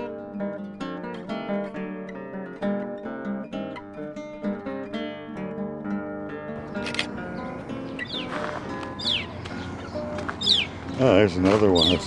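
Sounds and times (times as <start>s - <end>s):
acoustic guitar music: 0.0s - 12.0s
songbird chirping: 6.6s - 12.0s.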